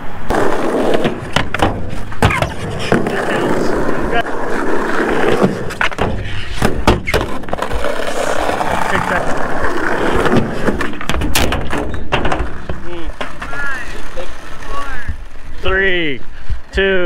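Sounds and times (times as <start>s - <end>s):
skateboard wheels rolling on concrete: 0.0s - 17.0s
skateboard deck clacking: 0.3s - 15.5s.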